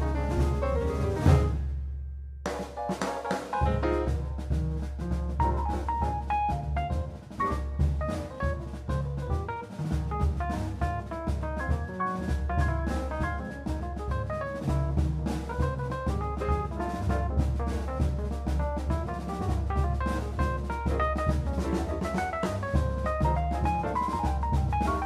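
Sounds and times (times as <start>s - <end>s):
jazz piano: 0.0s - 1.9s, 2.5s - 25.0s
double bass: 0.0s - 2.2s, 3.6s - 25.0s
drum kit: 0.0s - 25.0s.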